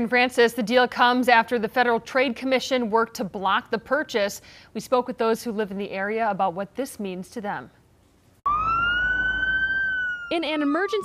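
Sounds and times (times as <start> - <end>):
ambulance siren wailing: 8.5 - 11.0.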